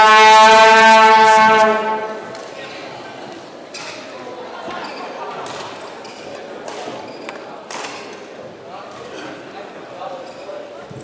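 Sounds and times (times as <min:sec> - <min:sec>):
echoing hall ambience: 0:00.0 - 0:11.0.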